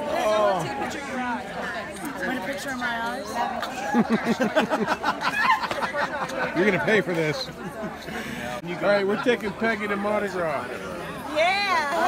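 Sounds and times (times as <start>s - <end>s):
party chatter of women's voices: 0.0s - 12.0s.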